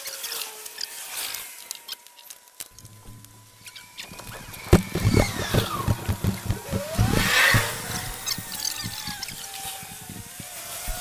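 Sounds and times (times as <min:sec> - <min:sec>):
gliding squealing tones: 0:02.8 - 0:11.0
low amplifier hum: 0:02.8 - 0:11.0.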